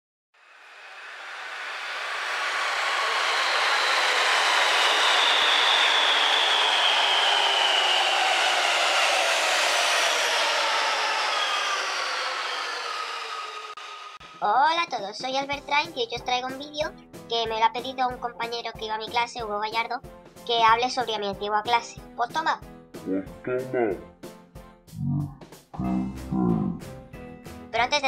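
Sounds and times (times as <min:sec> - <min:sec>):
high whine falling in pitch: 0:00.4 - 0:14.5
electric train running noise: 0:00.4 - 0:14.6.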